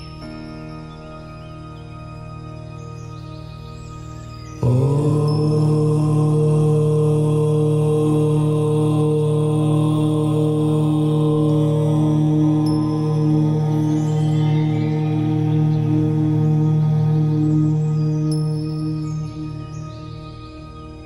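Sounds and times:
soft ambient meditation music: 0.0 - 21.0
low voice chanting om: 2.5 - 21.0.

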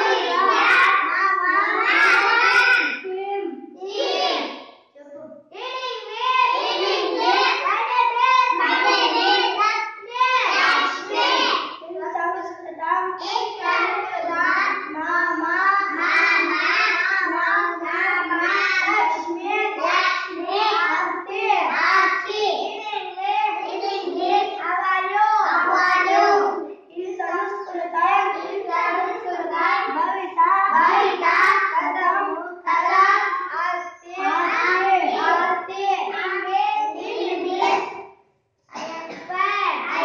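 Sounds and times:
children singing together: 0.0 - 4.6, 5.6 - 40.0.

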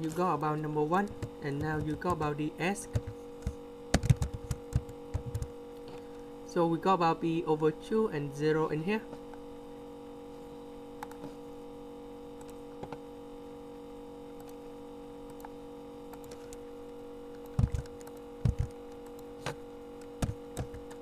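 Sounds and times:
electrical mains hum: 0.0 - 21.0
computer keyboard keystrokes: 1.0 - 2.2, 2.8 - 5.5, 16.1 - 16.6, 17.3 - 19.3, 20.0 - 21.0.

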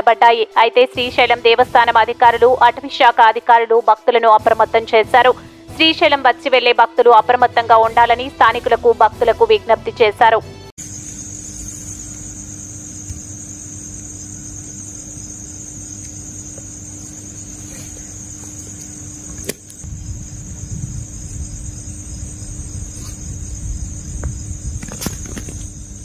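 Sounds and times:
crickets chirping: 0.2 - 6.6, 7.9 - 26.0
low rumbling noise: 19.8 - 24.8.

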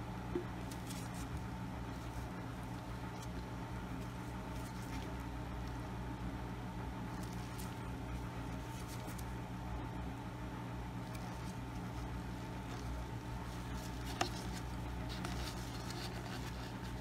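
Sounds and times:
low electrical hum: 0.0 - 17.0.

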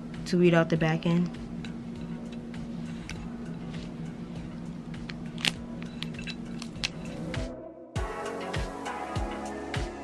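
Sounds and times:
steady low hum: 0.0 - 7.8
metal tool clicking and scraping: 5.1 - 7.4.

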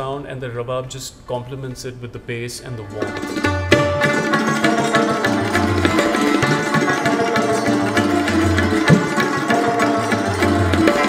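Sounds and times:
rabab plucked: 2.8 - 11.0.

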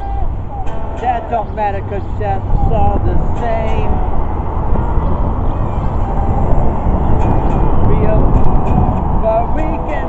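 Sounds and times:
person singing: 0.0 - 4.4, 5.5 - 10.0
electric guitar chords: 0.0 - 10.0.

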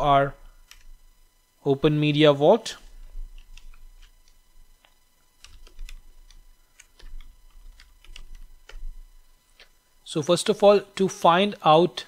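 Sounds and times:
keyboard typing: 0.6 - 1.0, 3.3 - 9.0.

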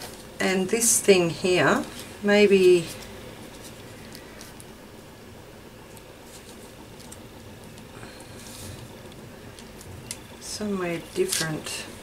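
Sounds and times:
soft paper rustle: 1.7 - 4.7, 5.9 - 7.3, 8.0 - 10.2, 11.0 - 11.9.

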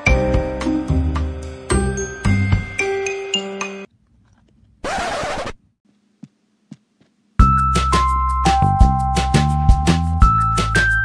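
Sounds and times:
keyboard melody with steady beat: 7.4 - 11.0.

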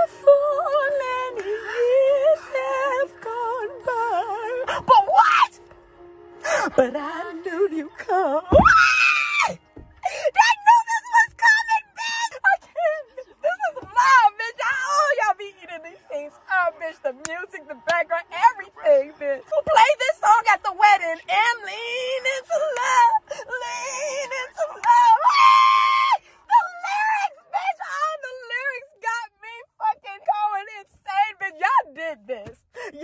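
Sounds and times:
woman screaming excitedly: 8.5 - 10.8, 24.8 - 27.4.

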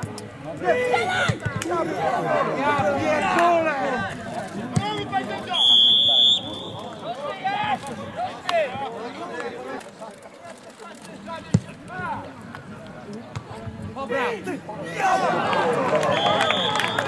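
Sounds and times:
referee whistle blast: 5.5 - 7.0, 16.1 - 17.0.

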